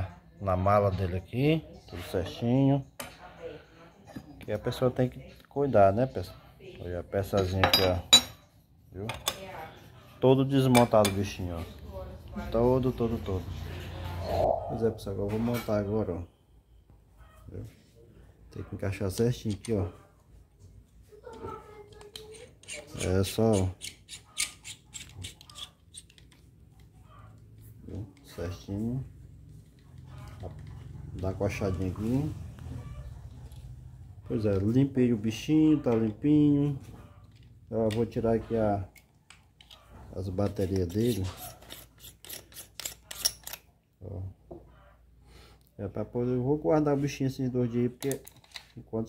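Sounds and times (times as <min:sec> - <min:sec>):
screw thread rubbing: 0:22.1 - 0:27.3, 0:39.6 - 0:43.7
plastic parts clicking together: 0:48.0 - 0:48.8.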